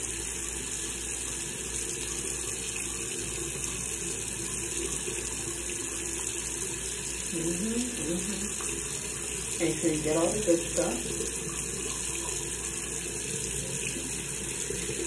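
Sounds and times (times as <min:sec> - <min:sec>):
tap water running into sink: 0:00.0 - 0:15.0.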